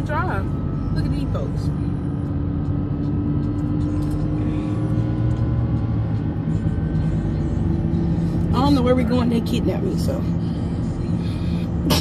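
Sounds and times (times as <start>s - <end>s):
car cabin road and engine rumble: 0.0s - 12.0s.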